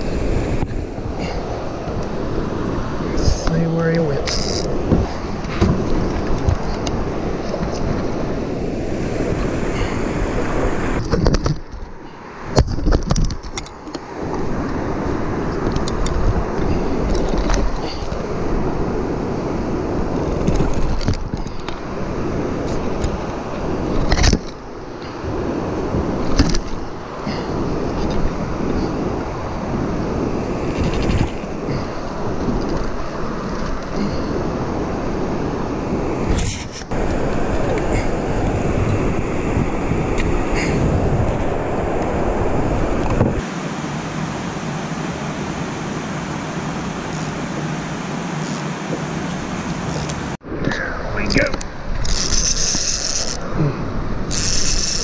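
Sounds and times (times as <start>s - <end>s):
fishing reel knocks and clicks: 52.0s - 53.4s, 54.3s - 55.0s.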